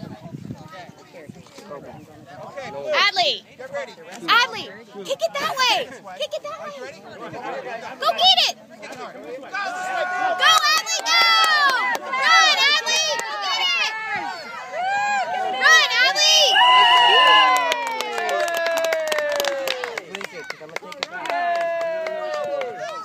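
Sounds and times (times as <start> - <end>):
children and adults shouting: 9.5 - 20.5.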